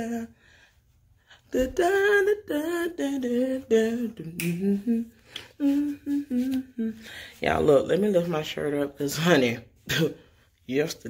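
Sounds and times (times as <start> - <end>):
woman singing under her breath: 0.0 - 7.4.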